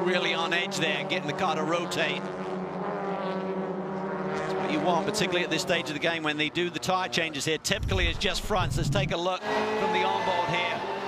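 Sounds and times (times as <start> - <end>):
racing car engines at high revs: 0.0 - 11.0
commentator's voice: 4.7 - 10.8.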